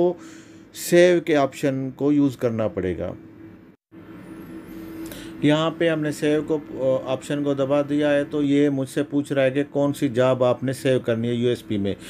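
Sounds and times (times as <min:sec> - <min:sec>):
faint wavering high whine: 0:00.0 - 0:12.0
low steady hum: 0:00.0 - 0:12.0.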